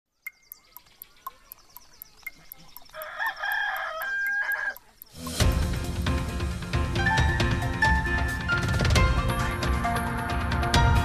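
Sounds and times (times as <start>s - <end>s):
clock ticking: 0.3s - 5.8s
rooster crowing: 3.0s - 4.8s
theme music with heavy beat: 5.2s - 11.0s.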